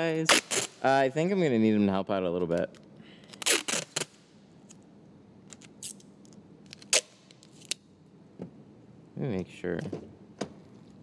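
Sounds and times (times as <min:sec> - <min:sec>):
tape ripping from roll: 0:00.2 - 0:00.8, 0:03.3 - 0:04.3, 0:05.5 - 0:07.8
blade cutting tape: 0:00.3 - 0:00.8, 0:03.3 - 0:04.2.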